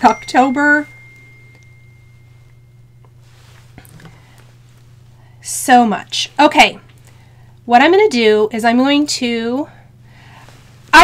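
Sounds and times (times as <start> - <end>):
high-pitched pure tone: 0.0 - 3.1
low steady hum: 0.0 - 11.0.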